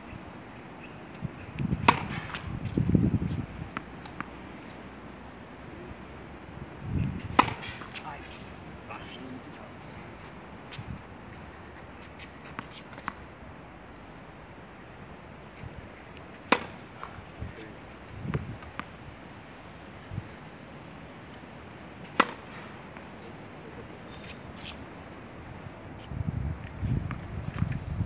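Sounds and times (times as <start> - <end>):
open-air background: 0.0 - 28.0
tennis ball bouncing knocks: 1.7 - 2.5, 7.3 - 8.0, 16.4 - 17.2, 22.0 - 23.1
tennis racket hitting ball: 1.7 - 2.5, 7.3 - 8.0, 16.4 - 16.9, 22.0 - 22.6.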